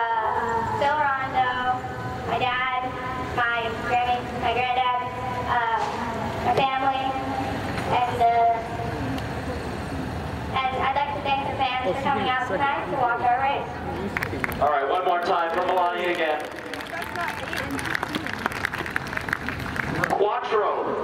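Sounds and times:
girl speaking into a microphone: 0:00.0 - 0:07.3, 0:07.9 - 0:08.7, 0:10.5 - 0:13.7.

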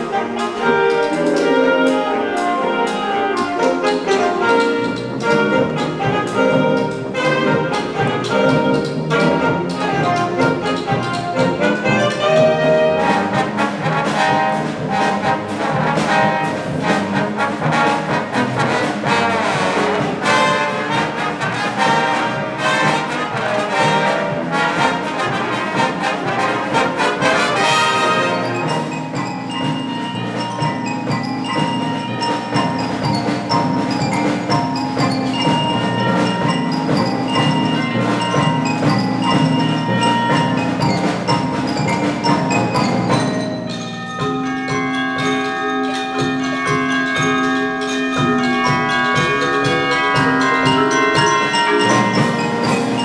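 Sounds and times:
saxophones: 0:00.0 - 0:53.0
trumpets and trombones: 0:00.0 - 0:53.0
wind band playing: 0:00.0 - 0:53.0.

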